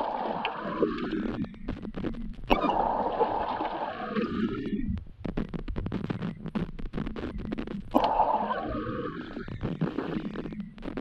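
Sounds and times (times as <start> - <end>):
underwater crackling clicks: 0.0 - 3.2, 5.0 - 8.3
underwater bubbling: 0.0 - 11.0.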